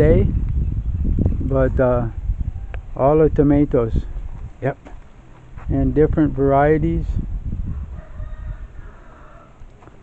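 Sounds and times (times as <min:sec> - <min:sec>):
low rumbling microphone noise: 0:00.0 - 0:09.6
rooster crowing: 0:07.7 - 0:09.7.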